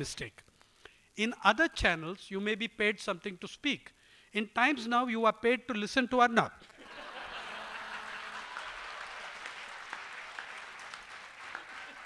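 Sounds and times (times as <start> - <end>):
audience applauding: 6.8 - 12.0.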